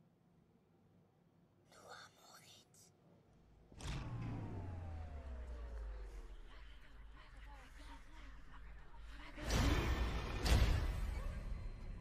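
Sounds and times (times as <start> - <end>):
faint whisper: 1.6 - 3.1.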